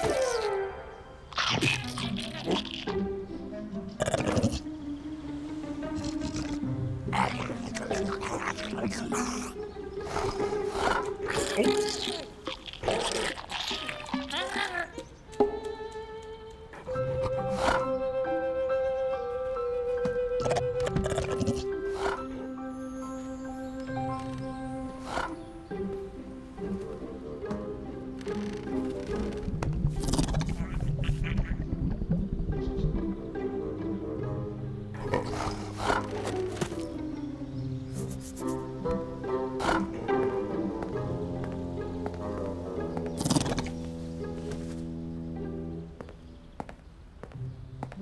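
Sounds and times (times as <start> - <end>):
cartoon music: 0.0 - 3.1, 30.4 - 31.9
cartoon background music: 0.0 - 46.1
cartoon bear growling: 1.3 - 3.0, 5.8 - 9.6, 10.2 - 15.0, 20.4 - 22.2, 30.0 - 31.6
low grunting vocal sounds: 5.8 - 14.6, 30.0 - 31.8.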